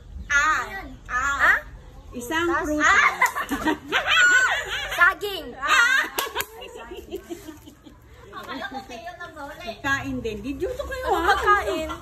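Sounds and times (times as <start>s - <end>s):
girls laughing: 2.9s - 9.1s.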